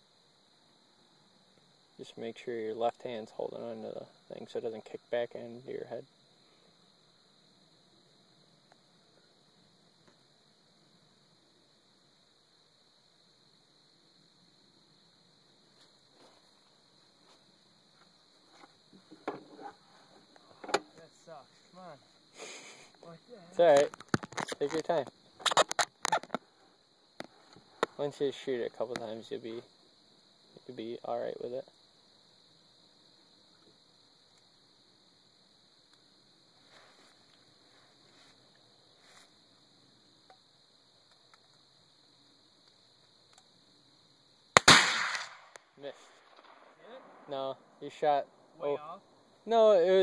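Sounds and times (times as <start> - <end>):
muzzleloader gunshot: 44.6 - 45.6
sharp rifle click: 44.6 - 46.6.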